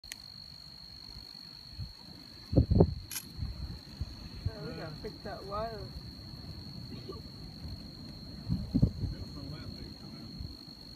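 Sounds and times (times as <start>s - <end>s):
cricket trilling: 0.0s - 10.9s.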